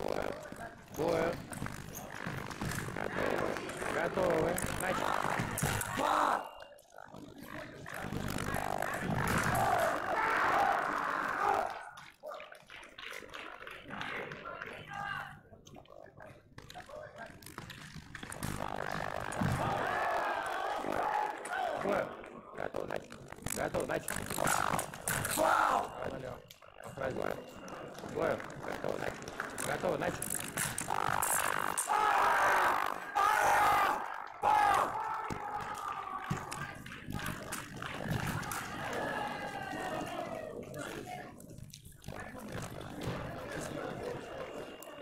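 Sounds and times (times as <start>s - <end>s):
voices calling out in a hall: 0.0s - 15.6s, 18.8s - 22.8s, 24.0s - 45.0s.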